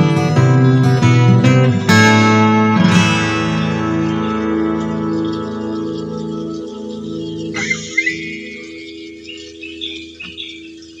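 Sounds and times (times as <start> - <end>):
twelve-string acoustic guitar chord: 0.0 - 6.8, 7.4 - 9.6
faint high guitar notes: 0.0 - 10.4.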